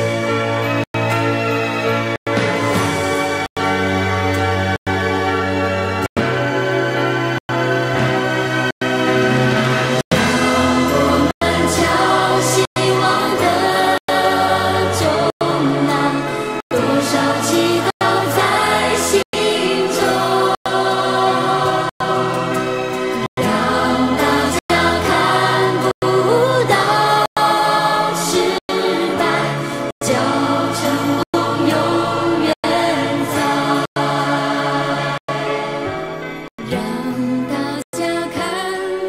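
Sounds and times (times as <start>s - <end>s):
pop ballad music: 0.0s - 39.0s.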